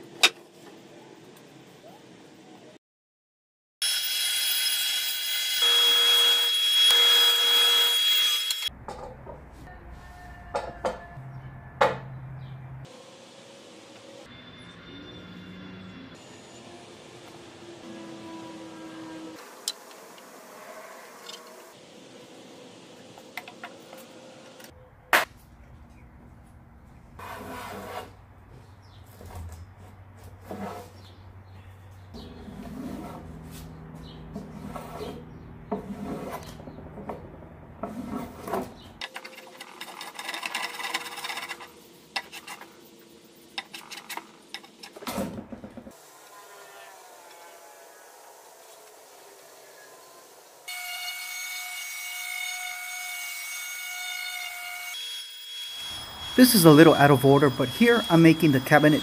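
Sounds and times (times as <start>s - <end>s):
wood scraping and rubbing: 27.2s - 31.2s, 32.2s - 45.9s.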